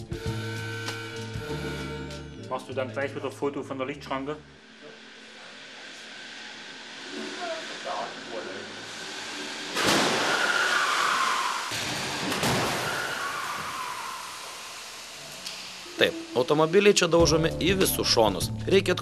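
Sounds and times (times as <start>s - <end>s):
loud car crash: 9.6s - 14.8s.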